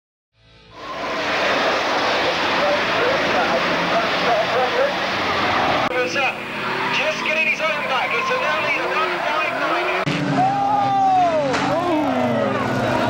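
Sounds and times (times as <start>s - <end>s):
stock cars racing roar: 0.7s - 13.0s.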